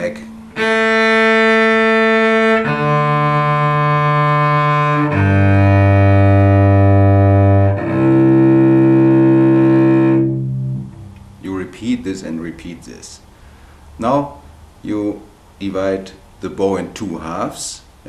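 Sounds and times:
cello bowed on open strings: 0:00.0 - 0:11.2.

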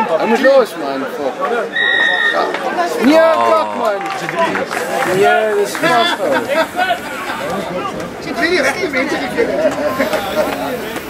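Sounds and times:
people chatting: 0:00.0 - 0:11.0.

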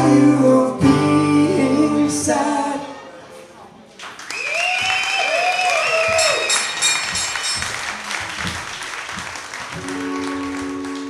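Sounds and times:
audience applauding and cheering: 0:04.0 - 0:11.0
high held whistle: 0:04.3 - 0:07.6.

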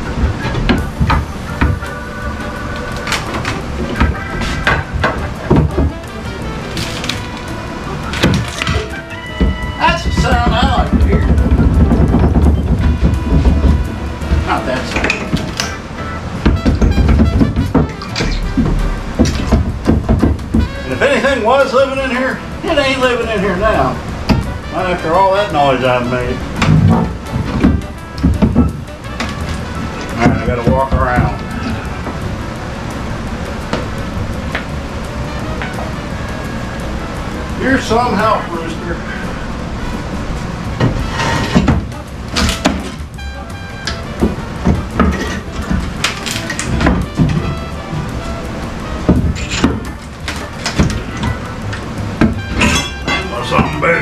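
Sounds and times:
background music: 0:00.0 - 0:54.0.

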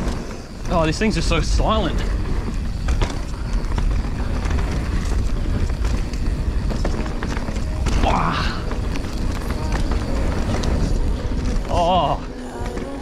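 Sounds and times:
bike clicks and knocks: 0:00.0 - 0:13.0
bike tyre noise on dirt: 0:00.0 - 0:13.0
wind rumble on microphone: 0:00.0 - 0:13.0.

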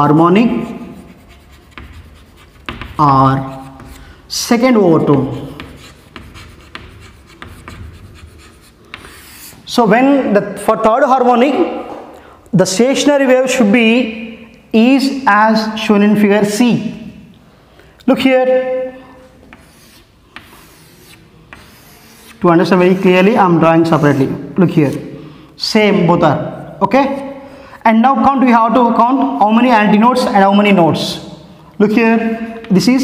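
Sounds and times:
chalk tapping and scraping: 0:00.5 - 0:09.7, 0:19.2 - 0:25.1.

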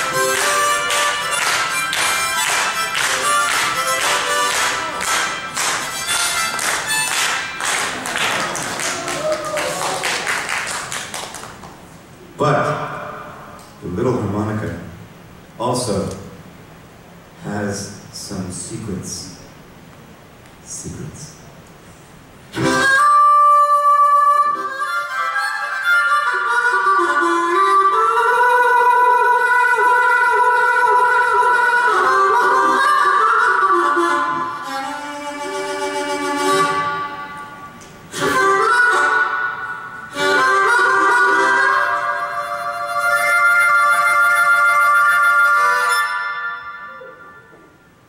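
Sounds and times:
solo harmonica: 0:00.0 - 0:08.0, 0:22.5 - 0:48.0.

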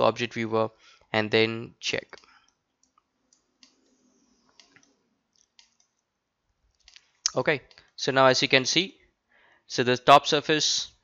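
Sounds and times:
computer mouse clicks: 0:02.1 - 0:06.1, 0:06.7 - 0:08.0.

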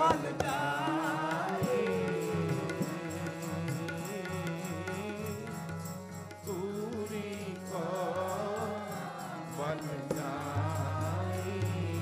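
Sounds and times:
voices singing a hymn: 0:00.0 - 0:05.8, 0:06.4 - 0:12.0
harmonium: 0:00.0 - 0:12.0
tabla: 0:00.0 - 0:12.0.

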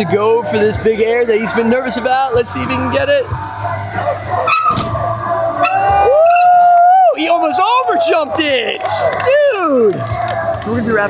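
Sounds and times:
music with low bass line: 0:00.0 - 0:11.0.

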